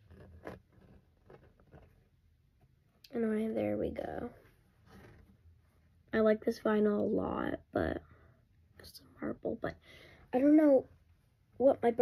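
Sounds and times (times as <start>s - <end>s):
vinyl record sleeve rustling: 0.0s - 2.9s, 3.9s - 5.7s.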